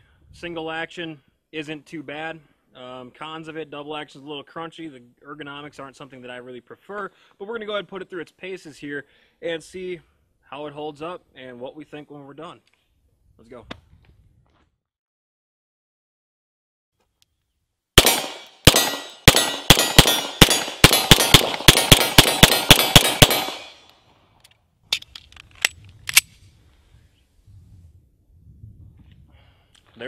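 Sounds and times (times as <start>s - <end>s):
pistol shots: 18.0s - 23.9s
pistol handling clicks: 18.0s - 26.3s.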